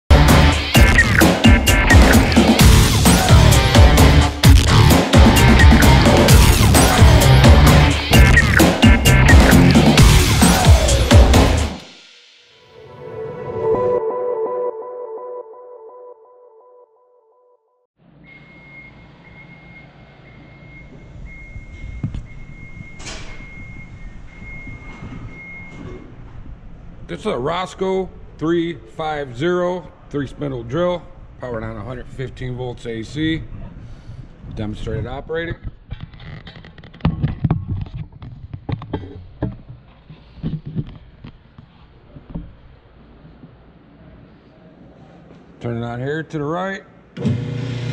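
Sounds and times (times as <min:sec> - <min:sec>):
intro music: 0:00.1 - 0:17.0.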